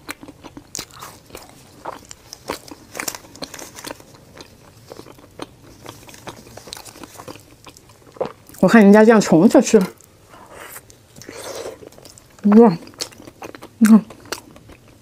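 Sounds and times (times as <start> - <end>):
close-mic chewing with crunches: 0.0 - 15.0.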